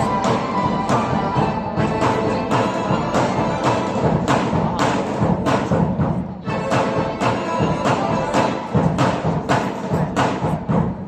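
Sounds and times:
folk ensemble with accordions: 0.0 - 5.0, 6.4 - 10.4
heavy thumping beat: 0.0 - 11.0.

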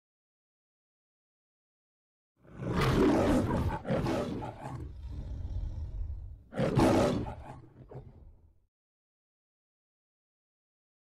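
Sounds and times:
lion growling: 2.4 - 8.5
lion roaring: 2.4 - 8.5.

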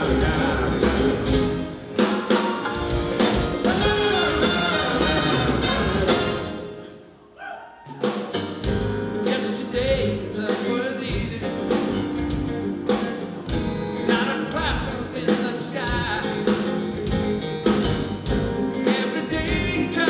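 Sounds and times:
drums on a steady beat: 0.0 - 6.5, 8.0 - 20.0.

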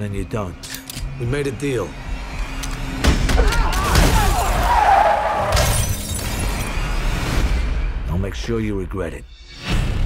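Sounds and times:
car window glass shattering: 5.5 - 6.6.

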